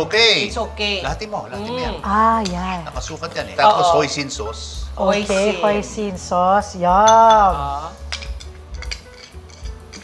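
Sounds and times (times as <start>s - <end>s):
quiet background music: 0.0s - 10.0s
spoon clinking on ceramic bowls: 7.0s - 10.0s.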